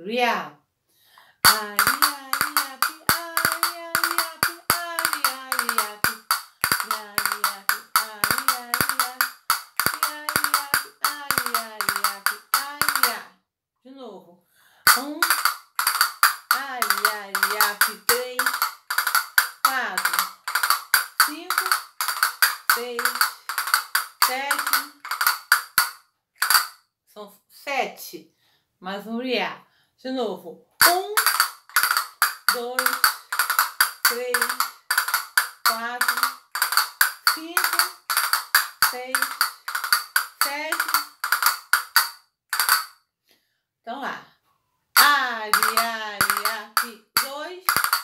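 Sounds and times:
castanets clicking: 1.4s - 13.2s, 14.9s - 26.8s, 30.8s - 43.0s, 45.0s - 48.0s
woman singing: 1.4s - 13.3s, 14.9s - 15.4s, 16.5s - 18.6s, 19.6s - 20.3s, 21.2s - 21.8s, 22.6s - 23.4s, 24.2s - 25.0s, 30.8s - 31.4s, 32.5s - 33.2s, 34.0s - 34.7s, 35.6s - 36.4s, 37.3s - 38.0s, 38.8s - 39.4s, 40.4s - 41.1s, 45.0s - 47.7s.

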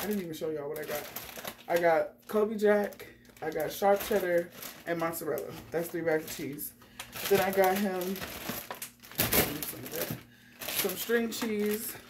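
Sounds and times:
plastic packaging crinkling: 0.0s - 12.0s.

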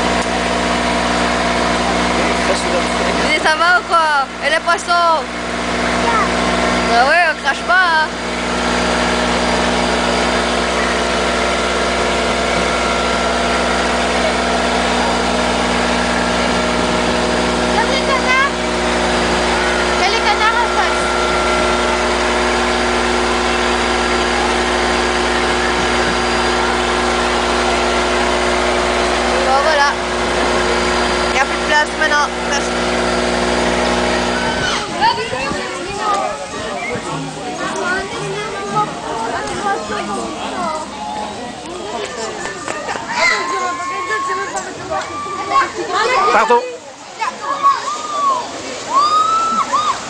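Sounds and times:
boat motor droning: 0.0s - 50.0s
child's voice: 6.0s - 6.4s, 37.6s - 41.0s.

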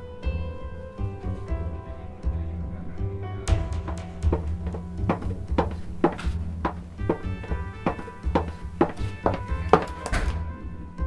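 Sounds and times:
background music: 0.0s - 11.0s
footsteps: 3.6s - 10.4s.

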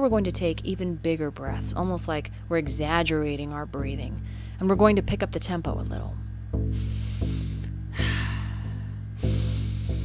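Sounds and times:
soft guitar music: 0.0s - 10.0s
person breathing deeply: 4.2s - 4.6s, 6.7s - 10.0s.

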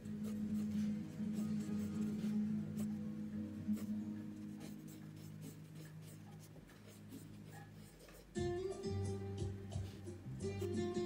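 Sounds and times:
pencil scratching on paper: 0.0s - 11.0s.

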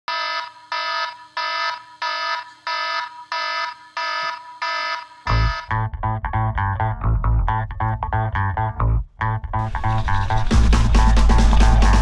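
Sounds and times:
smartphone alarm tone: 0.1s - 5.8s
heavy bass music: 5.3s - 12.0s.

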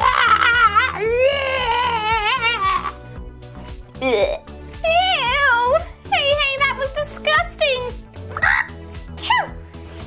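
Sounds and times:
person crying out: 0.0s - 3.0s, 8.3s - 9.6s
background music: 0.0s - 10.0s.

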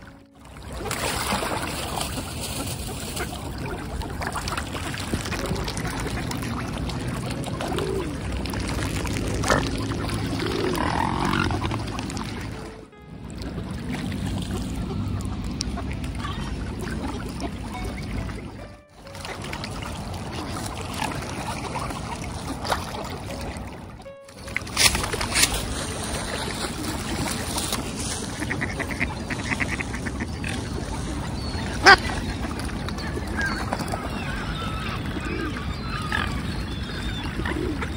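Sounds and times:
water splashing from birds paddling: 0.0s - 37.9s
ducks quacking: 0.7s - 12.9s, 13.5s - 19.7s, 24.4s - 37.9s.

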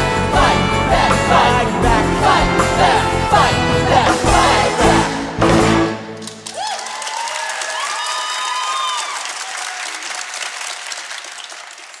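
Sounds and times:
audience applauding: 6.1s - 12.0s
whooping cheers: 6.5s - 10.3s.

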